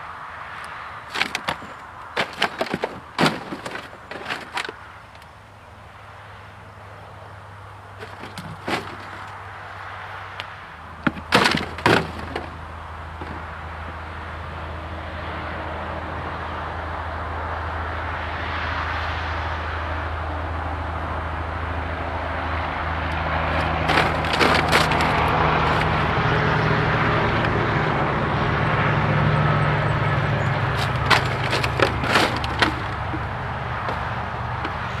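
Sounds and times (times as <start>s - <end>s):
sharp cracks: 0.6s - 5.3s, 10.4s - 13.5s, 23.6s - 26.1s, 30.7s - 35.0s
hooves crunching plastic debris: 1.1s - 4.9s, 8.0s - 9.5s, 10.9s - 14.0s, 23.5s - 26.3s, 30.6s - 35.0s.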